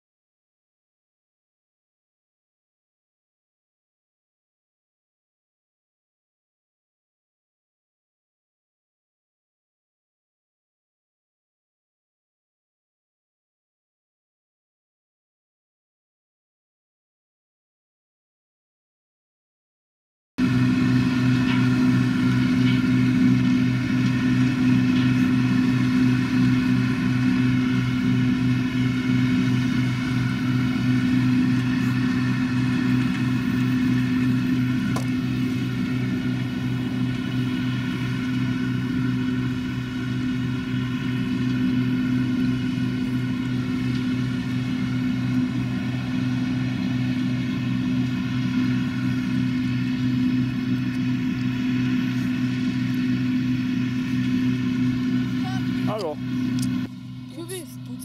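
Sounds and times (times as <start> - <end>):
combine harvester engine drone: 20.4 - 58.0.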